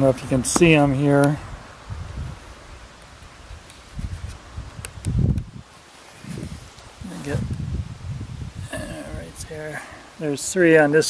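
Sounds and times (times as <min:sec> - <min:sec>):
wind buffeting microphone: 0:00.0 - 0:10.1.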